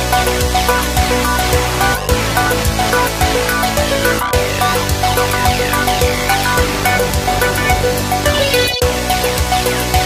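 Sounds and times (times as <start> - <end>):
electronic music with steady beat: 0.0 - 10.0
held synth notes: 0.0 - 10.0.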